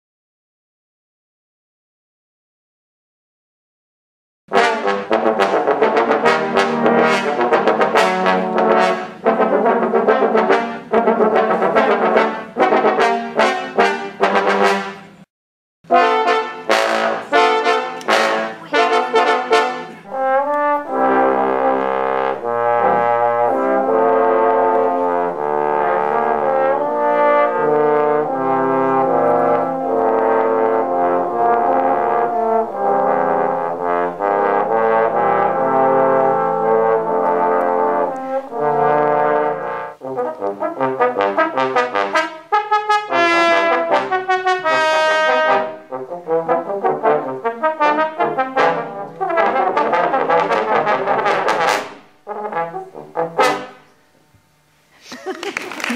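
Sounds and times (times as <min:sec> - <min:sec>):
trombone quartet playing: 0:04.5 - 0:15.3, 0:15.9 - 0:54.0.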